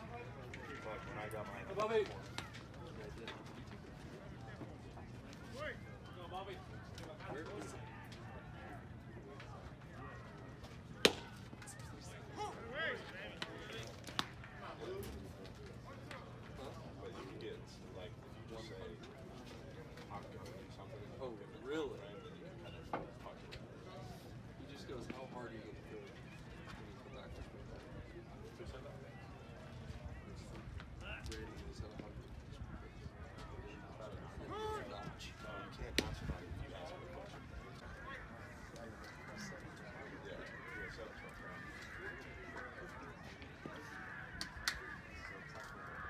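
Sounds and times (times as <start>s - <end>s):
faint voices talking: 0.0s - 46.0s
baseball bat crack: 11.0s - 11.5s
faint voices calling out: 25.7s - 46.0s.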